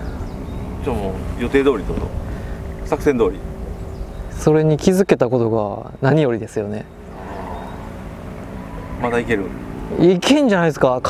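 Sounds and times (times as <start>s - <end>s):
wind buffeting microphone: 6.8s - 10.0s.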